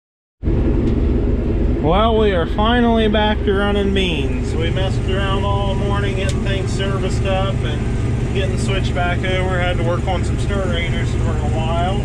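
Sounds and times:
combine harvester engine drone: 0.4 - 12.0
machine hum: 0.4 - 12.0.

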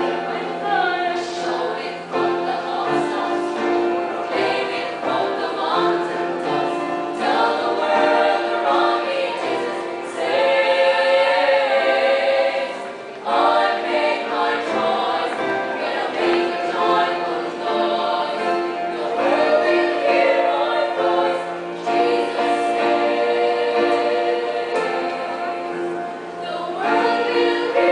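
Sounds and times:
female choir singing: 0.0 - 27.9.

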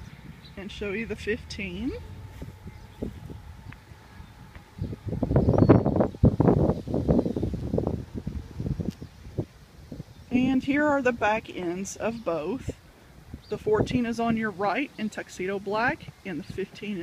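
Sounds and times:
microphone rustling: 0.0 - 11.4
wind buffeting microphone: 0.0 - 17.0.

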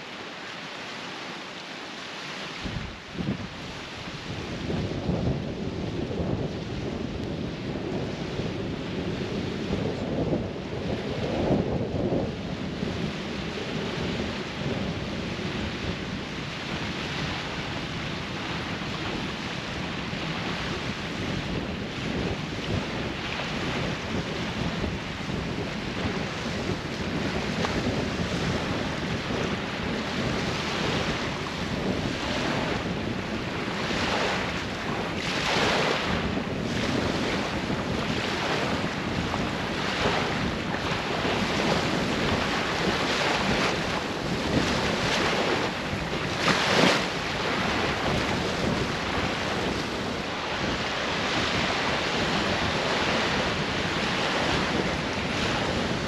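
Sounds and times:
small waves washing on shore: 0.0 - 56.0
wind buffeting microphone: 2.2 - 56.0.

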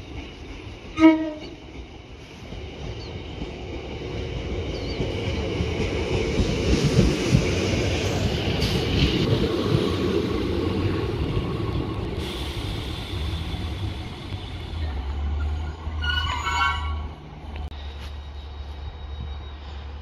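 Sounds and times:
diesel railcar engine rumble: 0.0 - 20.0
train horn: 1.0 - 1.6, 16.0 - 17.2.

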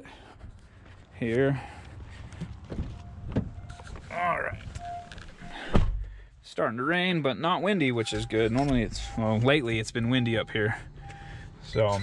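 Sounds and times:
faint beeping chime: 4.5 - 5.6, 8.0 - 12.0.

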